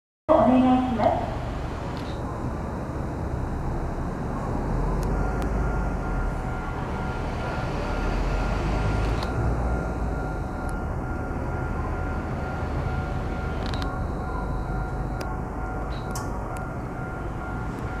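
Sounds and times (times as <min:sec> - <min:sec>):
train rumble: 0:00.3 - 0:18.0.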